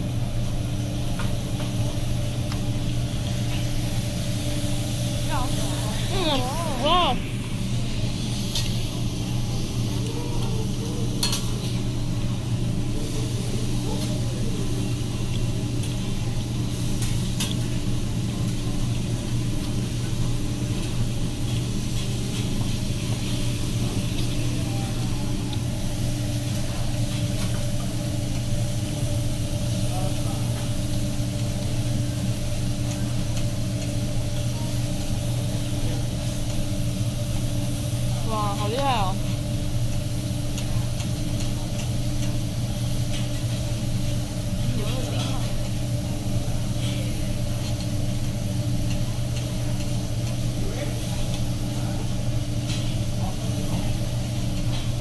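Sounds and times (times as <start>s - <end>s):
food sizzling on a griddle: 0.0s - 55.0s.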